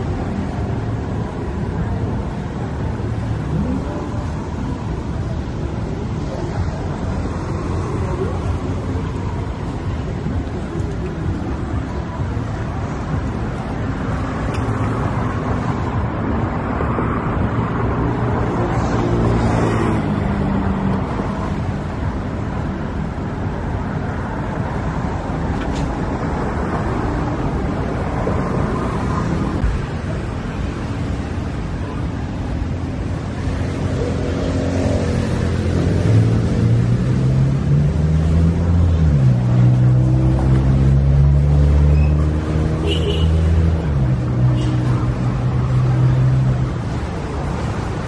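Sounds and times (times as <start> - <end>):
road traffic noise: 0.0 - 48.0.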